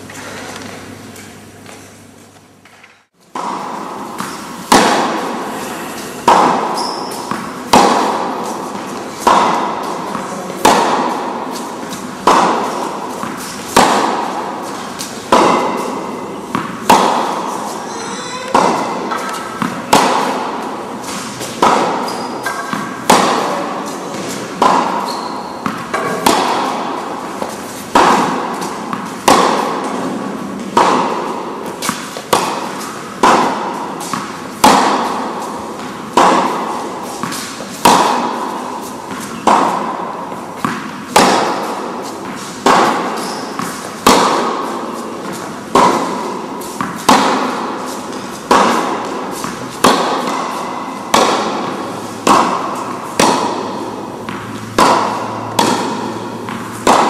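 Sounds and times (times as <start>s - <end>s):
tennis balls hit by rackets: 0.0s - 57.0s.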